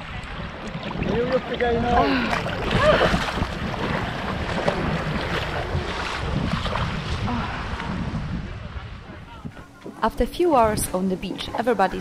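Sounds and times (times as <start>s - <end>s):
shallow water lapping: 0.0s - 12.0s
wind buffeting microphone: 0.0s - 12.0s.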